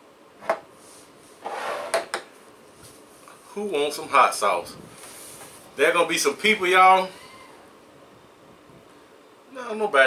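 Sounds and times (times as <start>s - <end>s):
bottle sliding: 1.4s - 2.1s.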